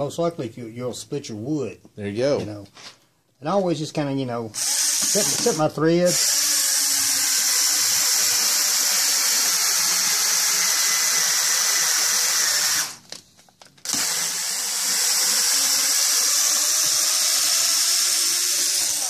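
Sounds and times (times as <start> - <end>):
power screwdriver whining: 4.6 - 13.1, 13.8 - 19.0.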